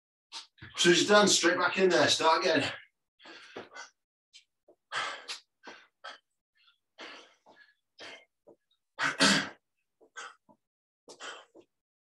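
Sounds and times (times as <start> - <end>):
person breathing hard: 3.2 - 4.0, 4.9 - 8.3.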